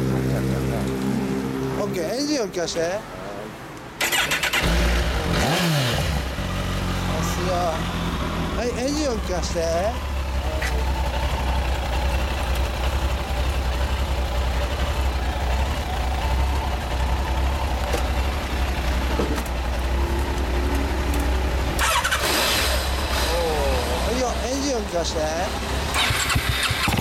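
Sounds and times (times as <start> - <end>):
motorcycle engine idling: 6.2 - 27.0.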